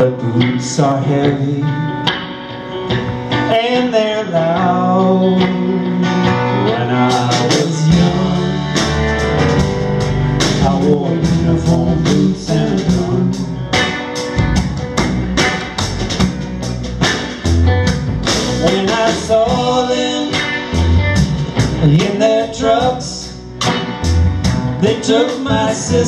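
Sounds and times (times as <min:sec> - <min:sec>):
drum kit: 0:00.0 - 0:26.0
live band playing instrumental: 0:00.0 - 0:26.0
upright bass: 0:02.8 - 0:26.0.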